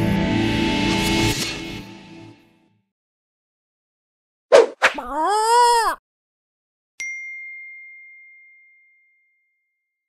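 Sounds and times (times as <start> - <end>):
bell-like chime ding: 7.0 - 9.8.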